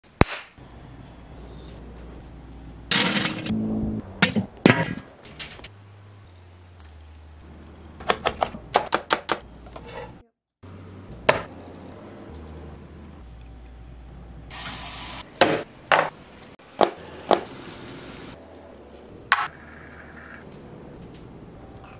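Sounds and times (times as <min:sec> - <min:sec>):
sharp kitchen knocks and clicks: 0:08.0 - 0:09.4.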